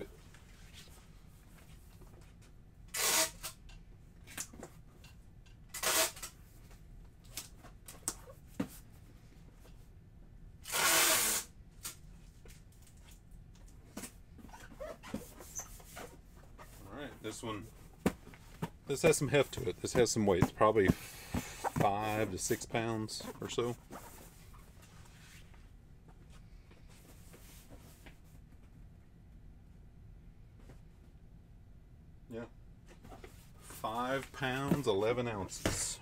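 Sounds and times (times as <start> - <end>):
packing tape pulled off roll: 2.9 - 3.6, 5.7 - 6.4, 10.6 - 12.0.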